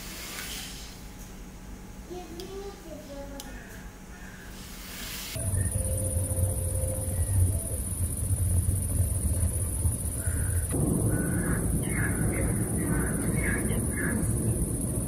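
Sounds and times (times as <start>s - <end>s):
high-pitched insect chorus: 4.6s - 15.0s
low rumble: 5.4s - 15.0s.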